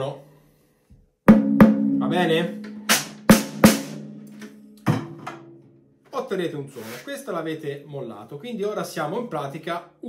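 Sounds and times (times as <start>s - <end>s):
snare drum hits ringing: 2.6s - 5.6s.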